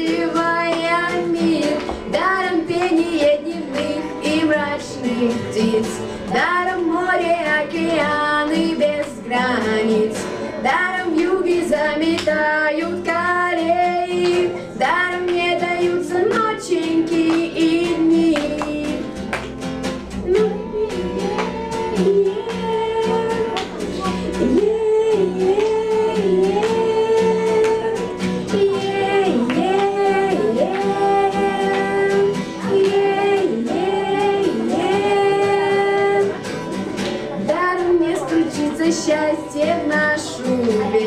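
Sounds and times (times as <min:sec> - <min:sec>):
girls singing together: 0:00.0 - 0:19.1, 0:20.2 - 0:41.0
acoustic guitar strumming: 0:00.0 - 0:41.0
girls singing long notes: 0:24.3 - 0:36.4.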